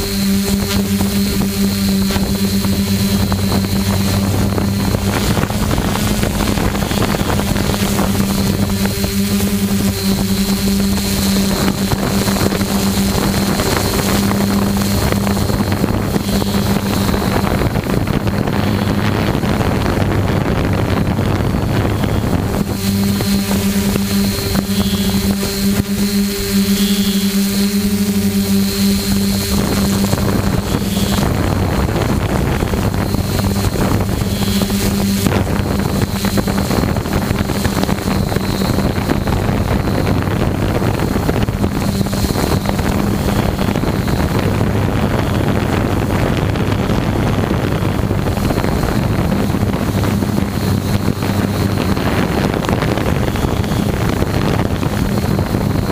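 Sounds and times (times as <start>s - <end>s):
drone motors humming: 0.0s - 55.9s
wind noise on microphone: 0.0s - 55.9s.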